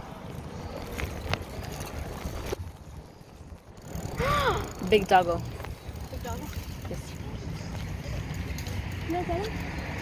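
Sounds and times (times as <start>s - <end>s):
bicycle road rumble: 0.0s - 10.0s.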